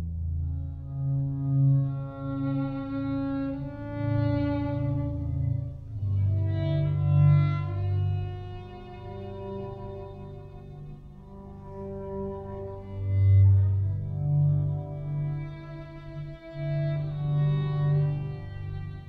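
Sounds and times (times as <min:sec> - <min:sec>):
violin long held notes: 0:00.0 - 0:19.0.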